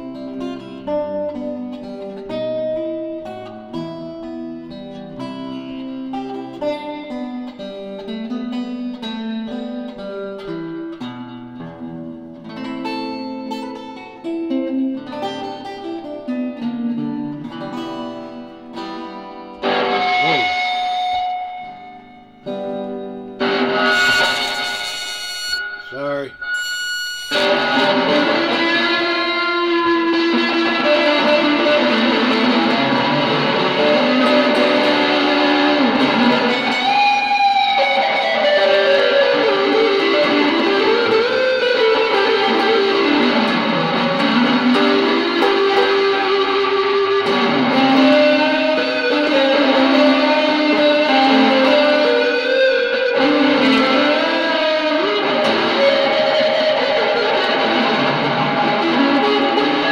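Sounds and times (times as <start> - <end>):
electric guitar playing: 0.0 - 59.9.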